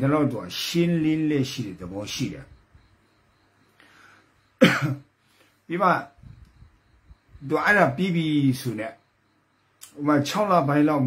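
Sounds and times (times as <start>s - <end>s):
man speaking: 0.0s - 2.6s, 5.7s - 6.2s, 7.4s - 9.0s, 9.8s - 11.0s
man clearing throat: 4.6s - 5.1s.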